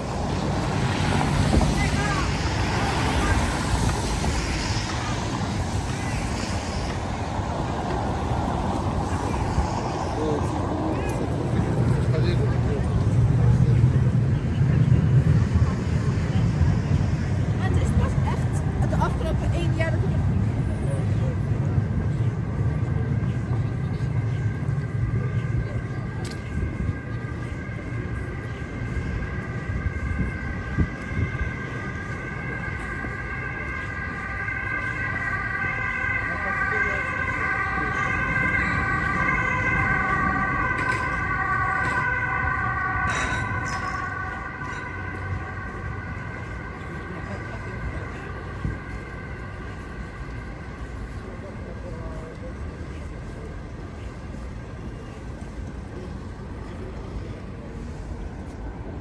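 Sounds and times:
emergency vehicle siren: 0.0 - 59.0
low traffic rumble: 0.0 - 59.0.

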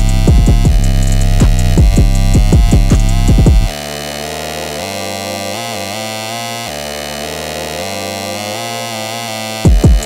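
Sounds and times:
synthesizer chords: 0.0 - 10.0.

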